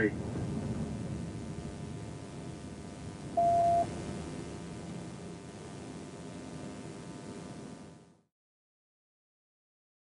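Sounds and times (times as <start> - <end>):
low steady hiss: 0.0 - 8.3
radio electronic beep: 3.3 - 4.0.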